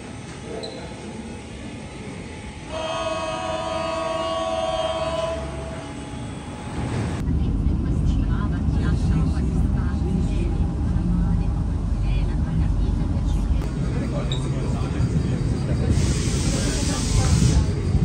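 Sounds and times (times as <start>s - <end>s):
deep rumble of train running: 0.0s - 18.0s
passengers' voices: 0.0s - 18.0s.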